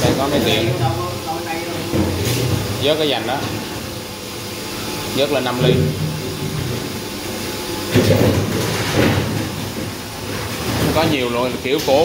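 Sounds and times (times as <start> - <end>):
bottling machine rumble and hiss: 0.0 - 12.0.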